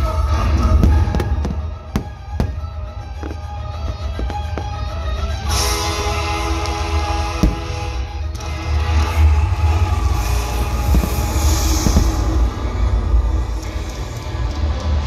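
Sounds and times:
music over loudspeakers: 0:00.0 - 0:12.6
fireworks bang: 0:00.8 - 0:03.4, 0:07.4 - 0:08.0, 0:10.6 - 0:12.6
deep rumble: 0:07.4 - 0:14.6
faint firework pops: 0:10.8 - 0:12.3.

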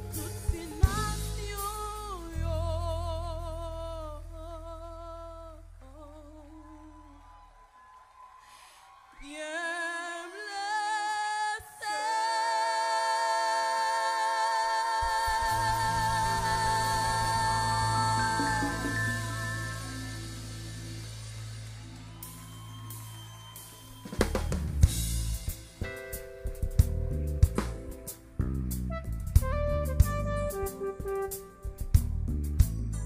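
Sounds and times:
woman singing with vibrato: 0:00.0 - 0:07.2, 0:09.2 - 0:20.8
low bass note: 0:26.5 - 0:33.0.

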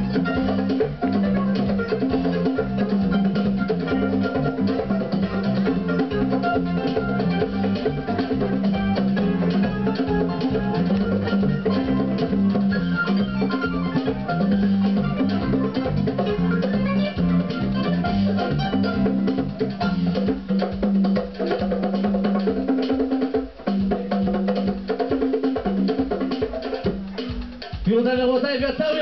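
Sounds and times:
keyboard: 0:00.0 - 0:24.8
bass line: 0:00.0 - 0:24.9
hand drums playing: 0:00.0 - 0:29.0.

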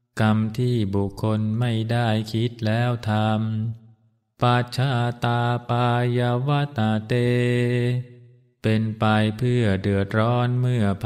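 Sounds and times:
monk chanting in monotone: 0:00.1 - 0:03.8, 0:04.4 - 0:11.0.

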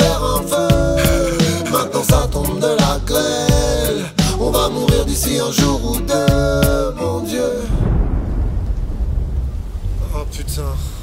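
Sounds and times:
thunder rumbling: 0:07.4 - 0:11.0
rain falling: 0:07.6 - 0:11.0.

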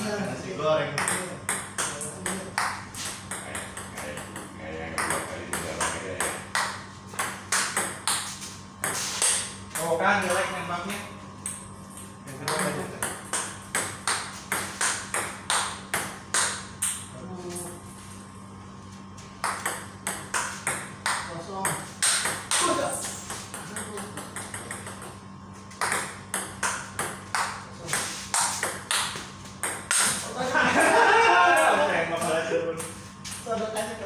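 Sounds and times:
ping-pong ball hitting bats and table: 0:00.9 - 0:17.1, 0:19.4 - 0:30.4, 0:31.5 - 0:34.0.

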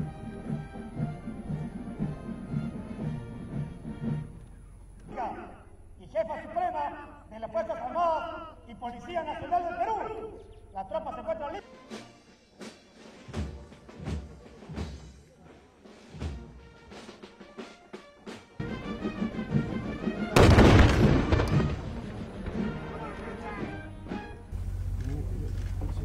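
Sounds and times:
military band playing: 0:00.0 - 0:04.8, 0:11.6 - 0:26.0
loud blast: 0:20.3 - 0:23.1
steady low hum: 0:24.0 - 0:26.0.

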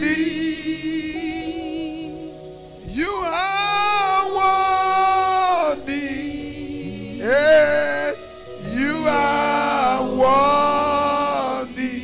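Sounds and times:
background music held tones: 0:00.0 - 0:12.0
man singing long high note: 0:00.0 - 0:12.0.

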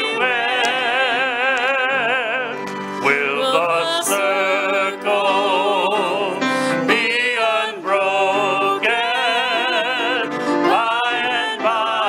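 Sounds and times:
man singing a slow hymn: 0:00.0 - 0:12.0
piano accompaniment: 0:00.0 - 0:12.0.

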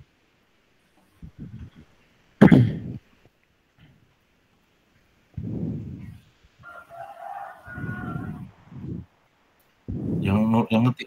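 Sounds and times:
muffled noise bursts: 0:01.1 - 0:03.2, 0:05.3 - 0:11.0
rooster crowing: 0:06.6 - 0:08.8.

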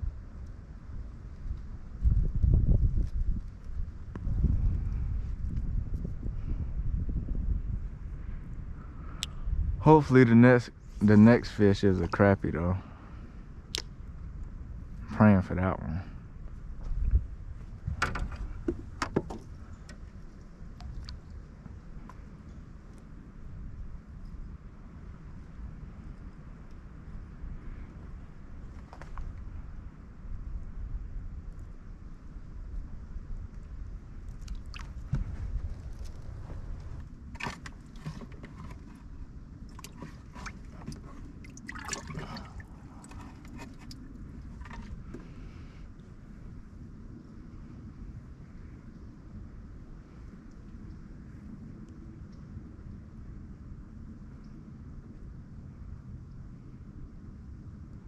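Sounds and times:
low wind rumble: 0:00.0 - 0:58.0
water lapping against boat hull: 0:34.3 - 0:45.7.

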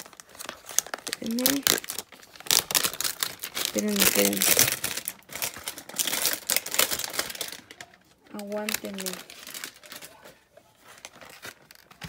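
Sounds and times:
plastic wrap crinkling: 0:00.0 - 0:12.0.

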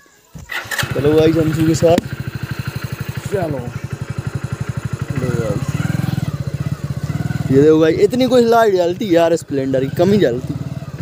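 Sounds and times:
motorcycle engine running at low speed: 0:00.4 - 0:11.0.

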